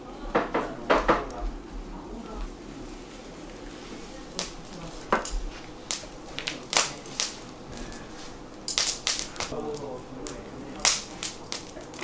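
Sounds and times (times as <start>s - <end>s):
hard objects clinking: 4.0s - 12.0s.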